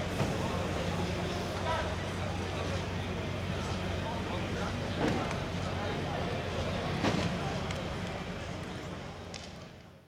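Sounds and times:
outdoor background voices: 0.0 - 10.0.

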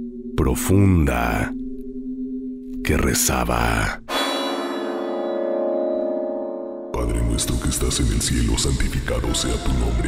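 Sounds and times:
bell-like metallic tone: 4.1 - 9.2.

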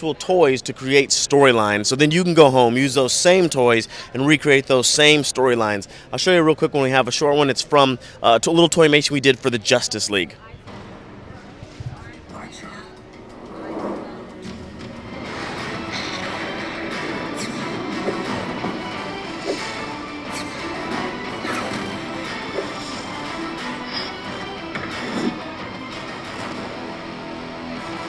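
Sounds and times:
action trailer music over loudspeakers: 13.0 - 28.0.

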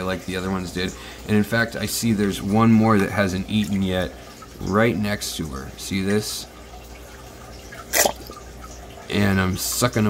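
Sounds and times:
water drip from baster: 0.0 - 10.0.

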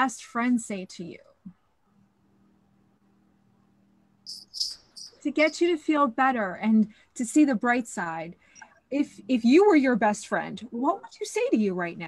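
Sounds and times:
faint steady hum: 0.0 - 12.0
bird chirping: 4.3 - 5.7, 8.4 - 8.9.

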